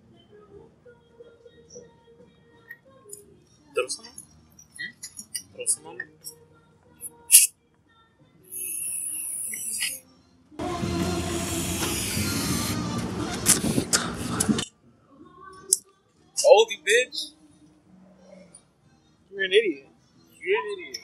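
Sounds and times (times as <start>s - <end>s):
music with vocals: 0.0s - 21.0s
aerosol spray hissing: 8.6s - 9.9s, 11.1s - 12.9s.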